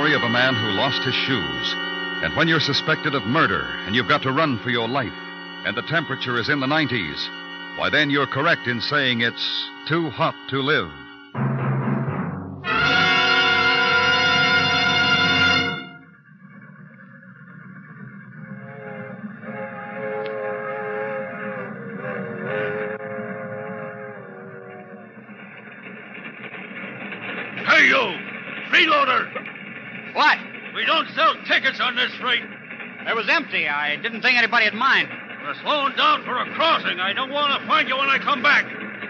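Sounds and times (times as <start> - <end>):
man speaking loudly: 0.0 - 11.0, 27.7 - 29.3
brass chord: 0.0 - 16.1
rolling train rumble: 0.0 - 39.0.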